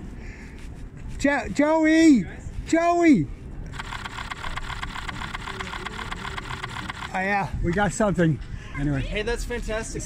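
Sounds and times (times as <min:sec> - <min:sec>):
camera shutter rapid clicks: 0:03.7 - 0:07.2.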